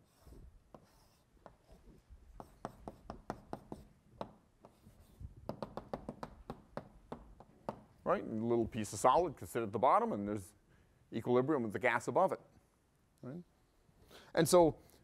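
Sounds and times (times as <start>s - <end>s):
chalk tapping on blackboard: 0.0s - 1.8s, 2.4s - 8.0s
chalk scraping on blackboard: 0.0s - 4.0s, 4.6s - 5.9s.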